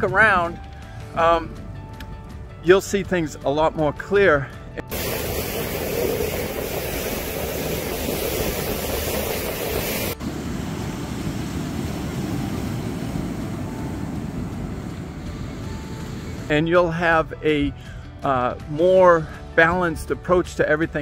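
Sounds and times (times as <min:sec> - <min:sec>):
wind on microphone: 0:04.9 - 0:13.8
water rushing past boat: 0:04.9 - 0:13.9.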